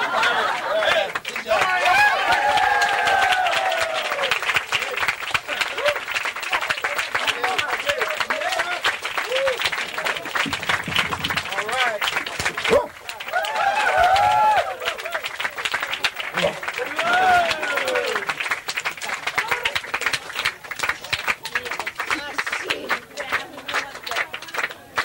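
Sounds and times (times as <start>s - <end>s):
loud shouted calls: 0.0s - 6.1s, 11.4s - 15.4s, 16.3s - 18.4s
audience applauding and cheering: 0.0s - 25.0s.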